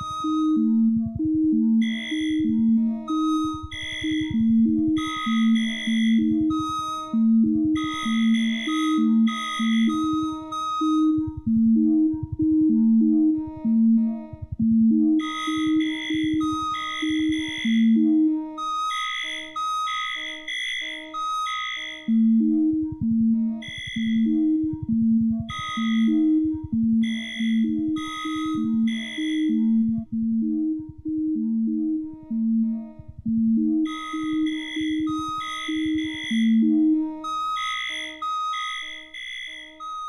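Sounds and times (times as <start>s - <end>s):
faint low drone: 0.0s - 18.6s, 22.0s - 38.2s
synthesizer tones: 0.0s - 40.0s.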